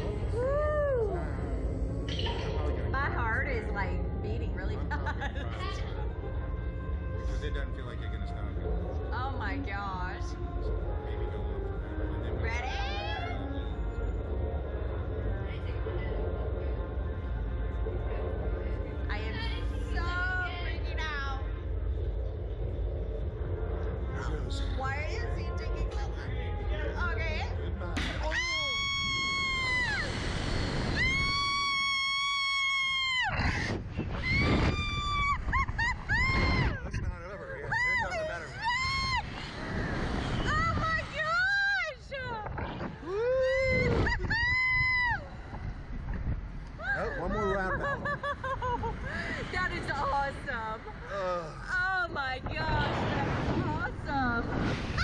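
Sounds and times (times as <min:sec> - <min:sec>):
woman screaming: 0:28.2 - 0:30.2, 0:31.0 - 0:33.5, 0:43.1 - 0:45.3
wind buffeting microphone: 0:33.2 - 0:51.1, 0:52.0 - 0:55.0.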